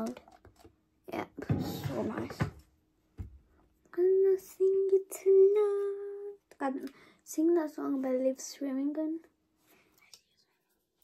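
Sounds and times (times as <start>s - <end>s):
girl singing: 3.9s - 9.3s.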